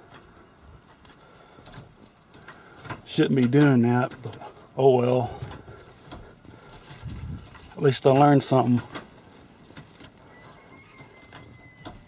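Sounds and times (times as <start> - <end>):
man speaking: 3.1 - 5.4, 7.7 - 8.9.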